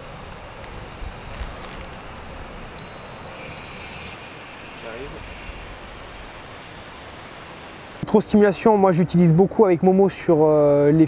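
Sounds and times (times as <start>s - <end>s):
outdoor background noise: 0.0s - 11.0s
short high electronic beeps: 2.8s - 4.2s.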